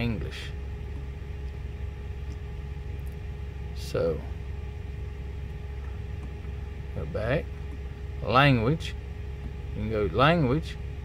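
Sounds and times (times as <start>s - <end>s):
diesel truck engine idling: 0.0s - 11.0s
faint steady hum: 0.0s - 11.0s.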